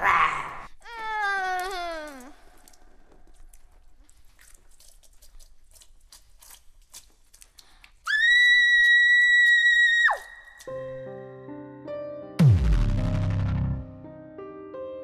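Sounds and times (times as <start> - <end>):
wet crackles and clicks: 1.4 - 8.1.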